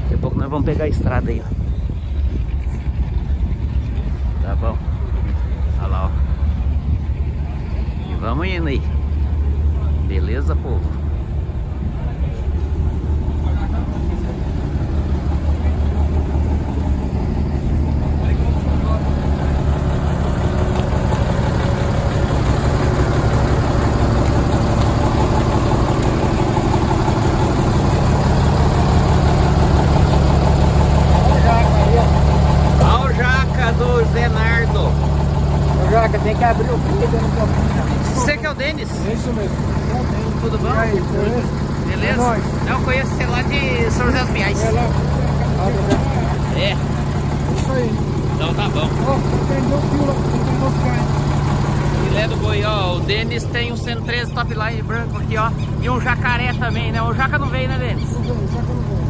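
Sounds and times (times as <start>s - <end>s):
people talking: 0.0s - 1.6s, 3.9s - 6.2s, 7.2s - 9.0s, 11.8s - 16.3s, 18.0s - 19.9s, 31.2s - 35.0s, 35.7s - 51.2s, 51.8s - 59.0s
truck engine idling: 0.0s - 59.0s.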